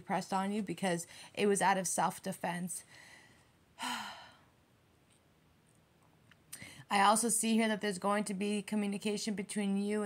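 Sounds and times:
woman sighing: 3.8 - 4.5.

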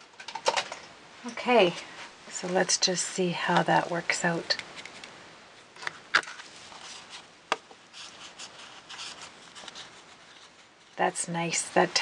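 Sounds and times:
paper and plastic rustling: 5.7 - 11.0.

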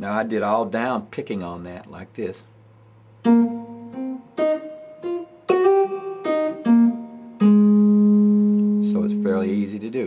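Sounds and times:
guitar notes: 3.2 - 10.0.

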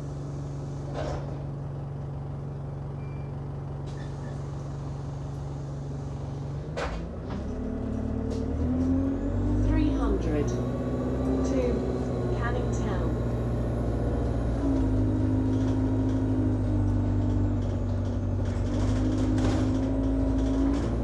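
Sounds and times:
bus engine hum: 0.0 - 21.0.

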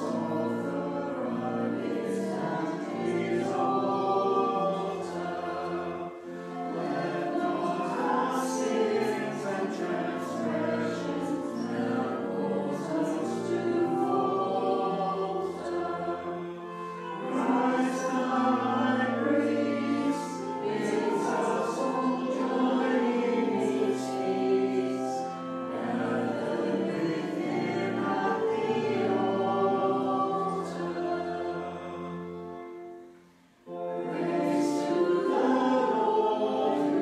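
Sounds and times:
congregation singing a hymn: 0.0 - 37.0.

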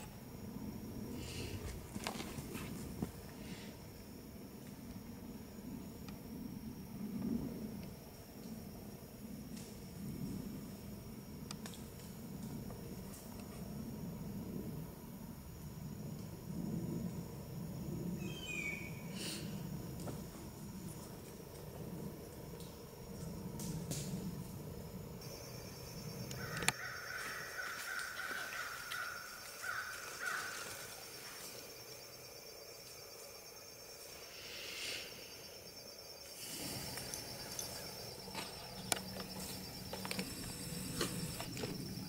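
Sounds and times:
pulsing insect trill: 0.0 - 42.0
bird calling: 18.2 - 19.4.

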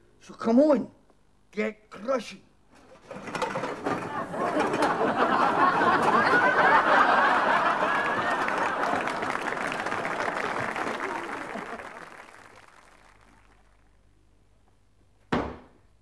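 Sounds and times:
studio audience laughing and applauding: 3.8 - 13.8.

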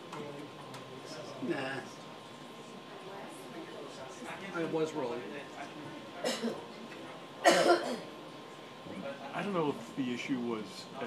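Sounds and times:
faint room chatter: 0.0 - 11.0
person coughing: 6.2 - 6.6, 7.4 - 8.1.

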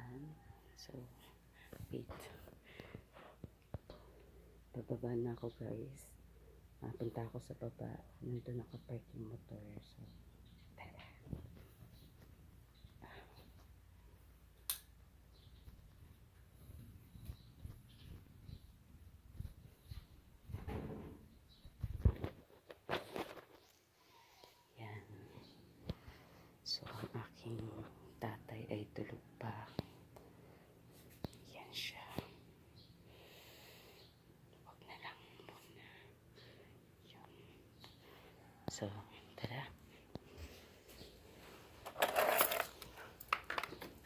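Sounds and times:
man whispering: 34.6 - 35.9, 37.0 - 37.6, 38.5 - 39.8.

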